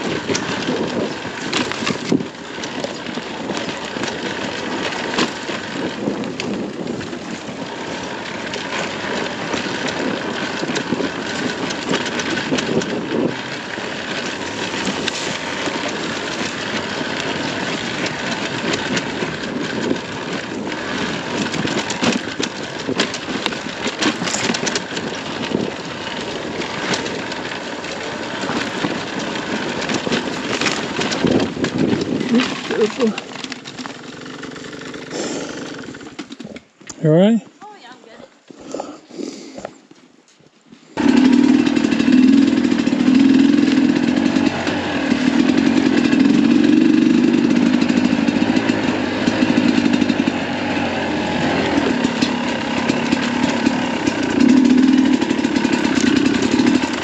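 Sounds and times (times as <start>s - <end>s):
two-stroke motorcycle engine: 0.0s - 39.4s, 41.0s - 57.0s.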